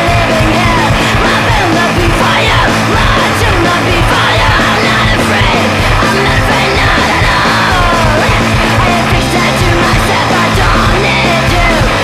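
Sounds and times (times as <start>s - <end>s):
distorted rock band playing: 0.0s - 12.0s
yelled vocals: 0.0s - 12.0s.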